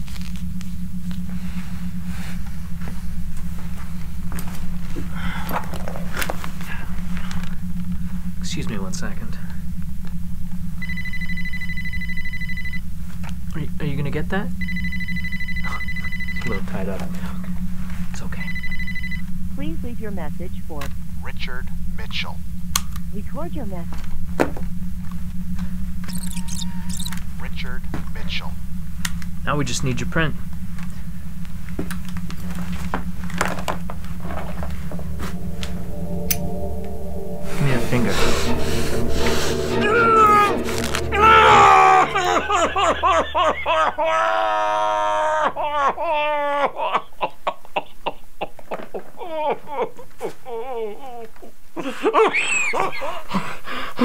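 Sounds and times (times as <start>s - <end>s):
low hum: 0.0s - 46.4s
steady low drone: 0.0s - 46.4s
phone ringing: 10.8s - 12.9s, 14.6s - 19.4s, 26.0s - 27.5s.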